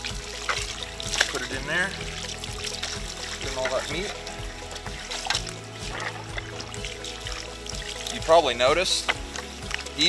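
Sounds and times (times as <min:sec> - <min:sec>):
background music: 0:00.0 - 0:10.0
water from hose splashing: 0:00.0 - 0:10.0.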